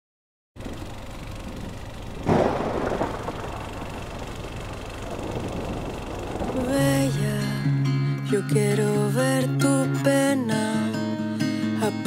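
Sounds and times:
low storm rumble: 0:00.6 - 0:07.9
loud thunderclap: 0:02.2 - 0:07.3.

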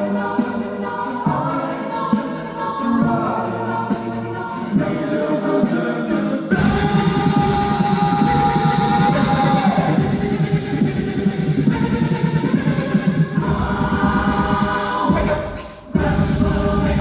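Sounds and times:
mixed choir singing: 0:00.0 - 0:17.0
rhythmic low accompaniment: 0:00.0 - 0:17.0.

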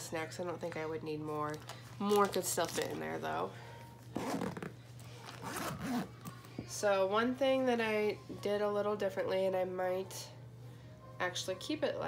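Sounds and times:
zipper being pulled shut: 0:04.1 - 0:06.2.

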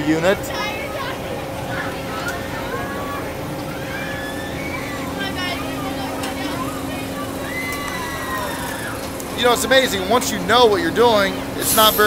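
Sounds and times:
fairground crowd noise: 0:00.0 - 0:12.0
ride machinery humming: 0:00.2 - 0:12.0
riders shouting and screaming: 0:02.4 - 0:10.4.

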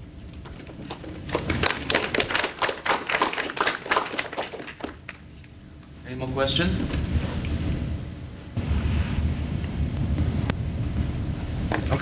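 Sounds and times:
small audience applauding: 0:01.3 - 0:05.2.

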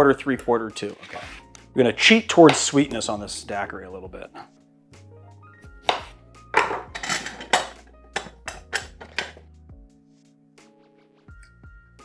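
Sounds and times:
soft background music: 0:00.0 - 0:12.0
knife knocking on cutting board: 0:05.9 - 0:09.3
metal juicer clacking: 0:06.6 - 0:09.4.

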